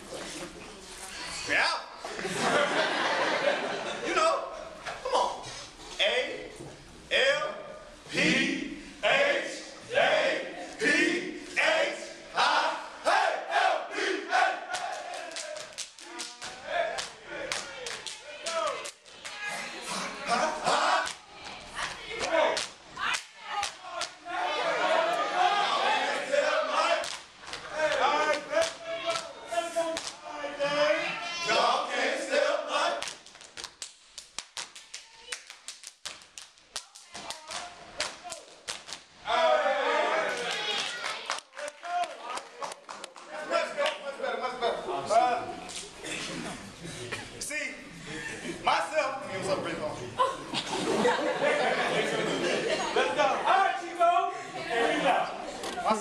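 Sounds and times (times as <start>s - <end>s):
group shouting in unison: 9.0s - 15.6s, 19.4s - 21.2s, 22.0s - 27.1s, 39.2s - 41.0s
hand claps: 14.7s - 19.4s, 27.0s - 29.3s, 29.9s - 30.2s, 33.0s - 39.1s, 40.4s - 44.0s.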